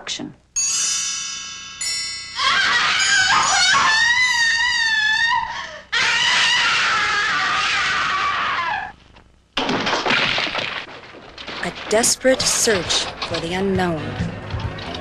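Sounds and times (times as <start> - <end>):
woman screaming: 2.4 - 8.9
noisy crashing: 9.6 - 15.0.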